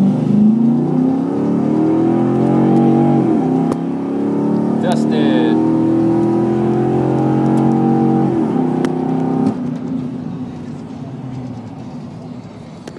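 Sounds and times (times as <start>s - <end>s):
car engine at high revs passing: 0.0s - 10.1s.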